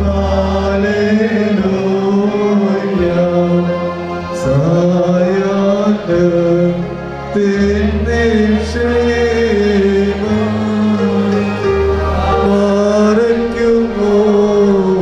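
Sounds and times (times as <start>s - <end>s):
voices chanting long notes: 0.0s - 15.0s.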